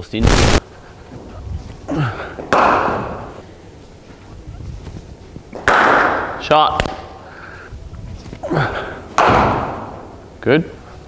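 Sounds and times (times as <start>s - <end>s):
cricket bat striking ball: 2.4s - 3.4s, 5.6s - 7.1s, 9.1s - 10.2s.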